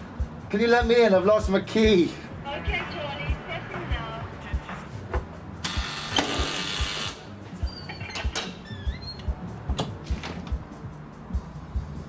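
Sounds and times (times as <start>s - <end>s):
music with slow low pulse: 0.0s - 12.0s
electric door buzzer: 5.6s - 7.4s
door clicks and squeaks: 7.6s - 10.6s.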